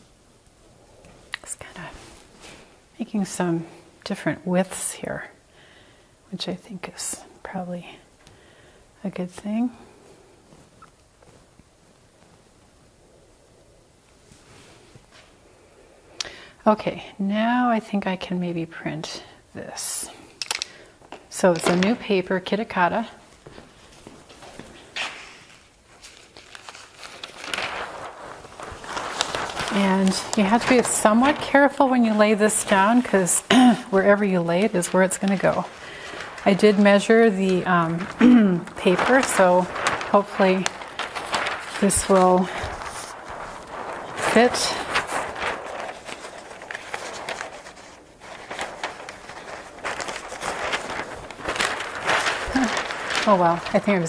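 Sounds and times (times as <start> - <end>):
paper rustling: 20.3 - 54.0
footsteps on hard floor: 23.4 - 25.3.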